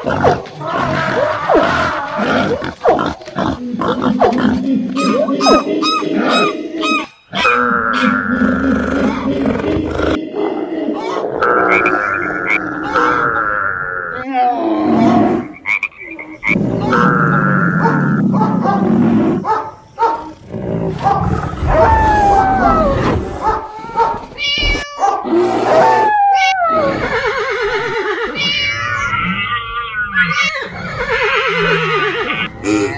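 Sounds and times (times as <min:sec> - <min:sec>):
animal calls and roars: 0:00.0 - 0:32.9.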